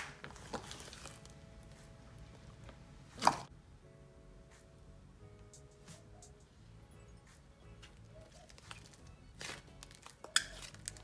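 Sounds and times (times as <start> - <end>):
sharp slime squelch: 0.0 - 1.3
faint background music: 0.0 - 11.0
slime squelching by hand: 0.2 - 1.8.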